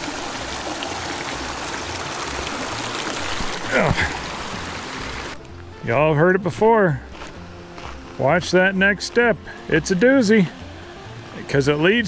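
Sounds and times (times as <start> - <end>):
creek water rushing: 0.0 - 12.0.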